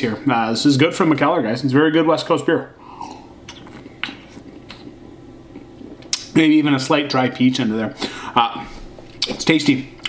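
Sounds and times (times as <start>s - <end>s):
low steady hum: 0.0s - 10.0s
man sipping and swallowing: 2.8s - 6.2s.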